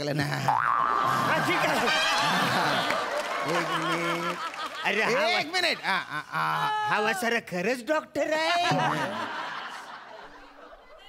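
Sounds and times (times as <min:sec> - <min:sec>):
chuckling laughter: 0:00.2 - 0:06.8.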